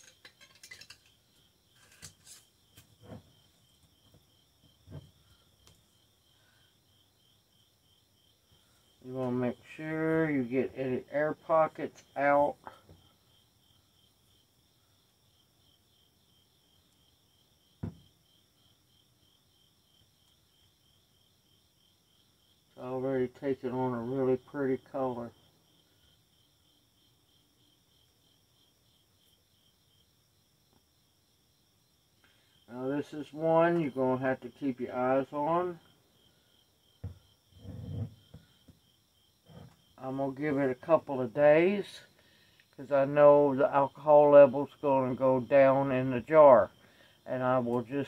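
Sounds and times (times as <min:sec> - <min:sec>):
crickets chirping: 0:00.0 - 0:48.0
jar thumping on table: 0:17.8 - 0:18.0, 0:37.0 - 0:37.2
light knocks on jar: 0:17.8 - 0:18.0
knock: 0:17.8 - 0:18.1, 0:37.0 - 0:37.2.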